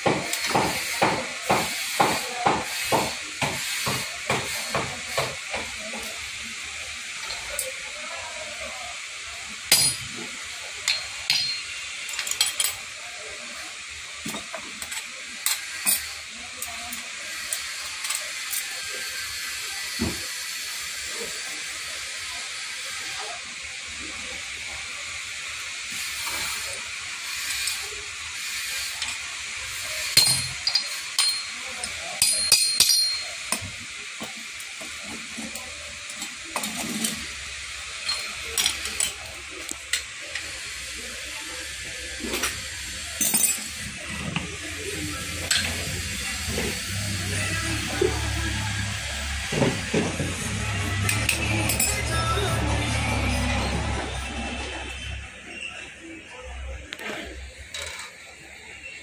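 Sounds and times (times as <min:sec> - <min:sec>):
steady hiss: 0:00.0 - 0:53.6.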